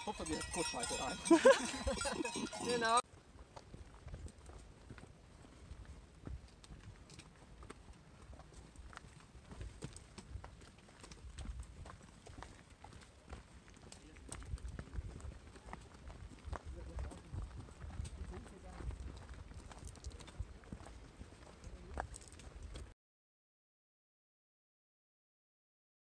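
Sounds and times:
footsteps on rocky trail: 0.0s - 22.9s.

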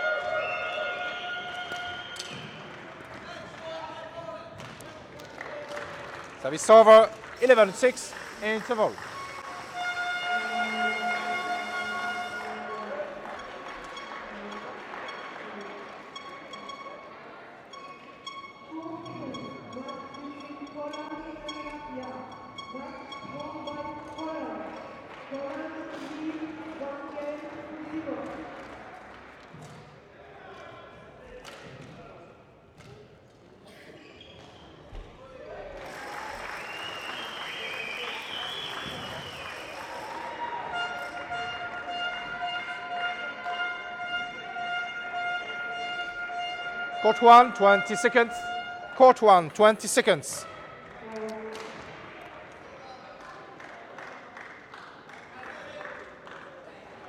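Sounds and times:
indistinct talking with echo: 0.0s - 57.0s
steady held tone: 7.4s - 17.0s.

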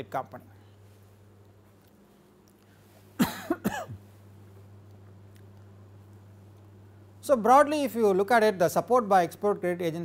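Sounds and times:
man coughing: 3.2s - 4.0s.

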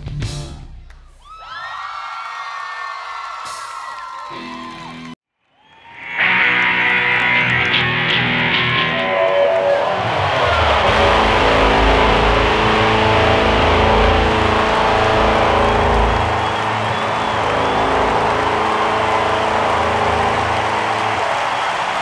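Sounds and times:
distorted guitar and bass chords: 0.0s - 0.9s, 6.1s - 21.2s.

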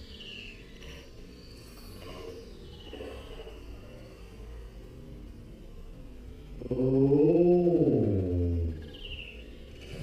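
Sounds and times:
man's drawn-out ooh: 6.6s - 8.8s.

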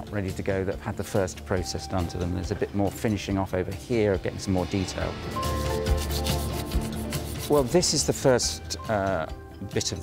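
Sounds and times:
hand tool scraping a surface: 4.9s - 7.8s.

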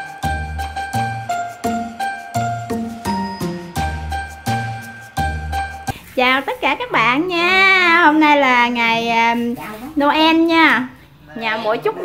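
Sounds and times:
upbeat music with chiming bells: 0.0s - 5.9s.

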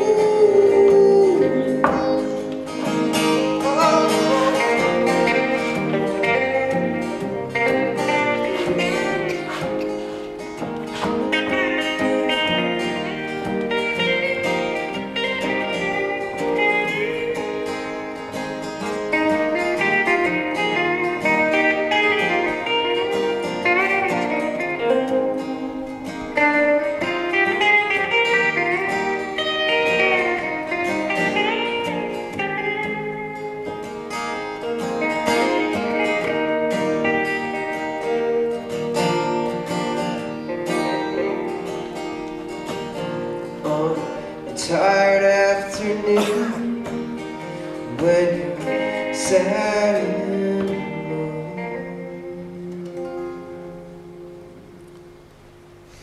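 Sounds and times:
acoustic guitar strumming: 0.0s - 56.0s
electric guitar lead with bent notes: 0.0s - 56.0s.

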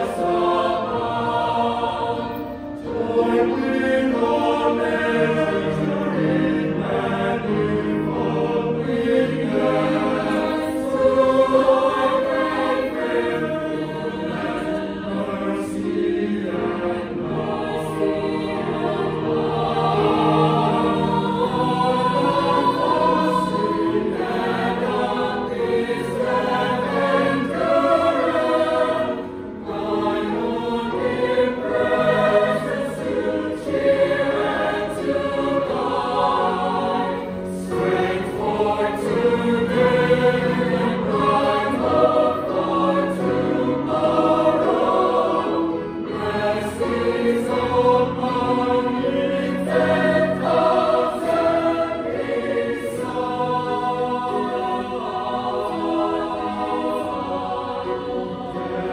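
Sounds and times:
mixed choir singing in harmony: 0.0s - 58.9s.

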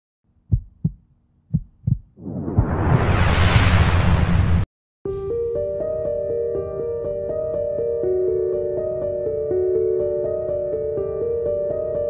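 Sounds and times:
heartbeat thumps: 0.4s - 2.2s.

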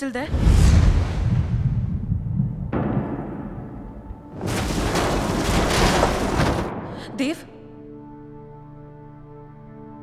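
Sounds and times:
dramatic film score: 0.0s - 10.0s
car tumbling crash: 4.3s - 7.1s.

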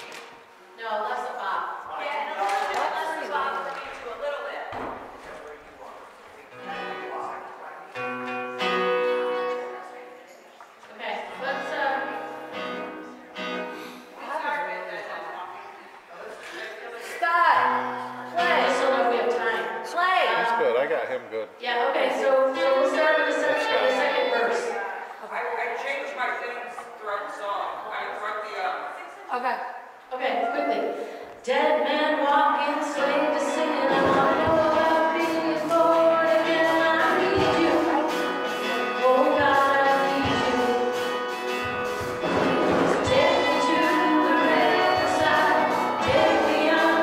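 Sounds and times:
acoustic guitar strumming: 6.5s - 10.0s, 11.3s - 13.9s, 32.8s - 47.0s
held notes: 32.3s - 47.0s.

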